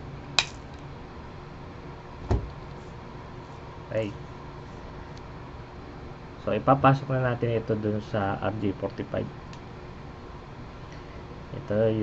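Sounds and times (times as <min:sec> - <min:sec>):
dull low thump: 0:02.2 - 0:02.6.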